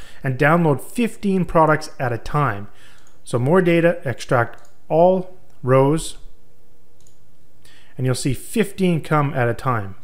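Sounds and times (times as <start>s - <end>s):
low room hiss: 0.0s - 10.0s
faint computer mouse click: 7.0s - 7.2s
soft breath: 7.6s - 8.0s.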